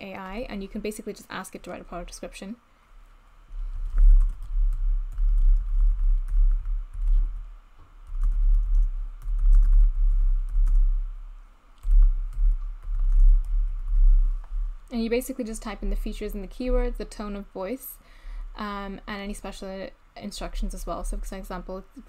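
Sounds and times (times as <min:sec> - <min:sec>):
computer keyboard typing: 0:03.8 - 0:07.4, 0:08.0 - 0:11.0, 0:11.8 - 0:14.2.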